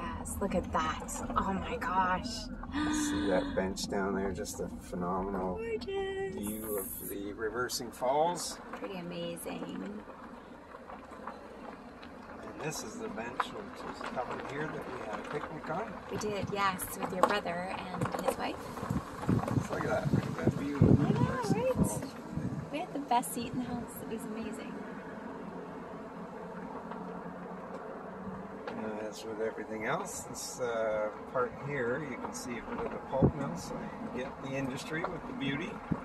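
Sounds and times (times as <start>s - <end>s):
low outdoor rumble: 0.0s - 36.0s
road noise: 0.0s - 36.0s
vehicle engine humming: 0.0s - 36.0s.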